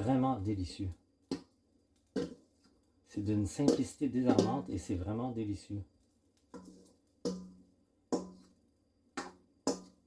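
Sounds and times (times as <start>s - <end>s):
spatula scraping metal bowl: 2.2s - 2.5s, 6.5s - 8.6s.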